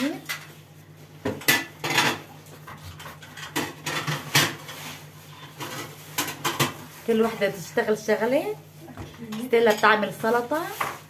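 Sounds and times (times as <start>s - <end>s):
pans and utensils clinking: 1.3s - 7.4s, 9.3s - 11.0s.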